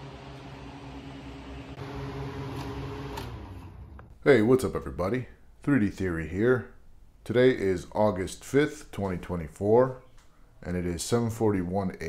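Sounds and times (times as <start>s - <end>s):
mechanical hum of fans: 0.0s - 4.1s.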